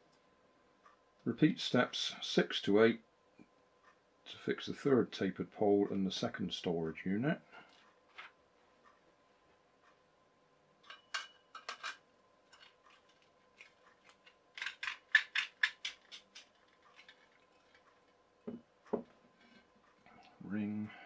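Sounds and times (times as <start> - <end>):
wire shelf clinking on metal pole: 10.8 - 12.6.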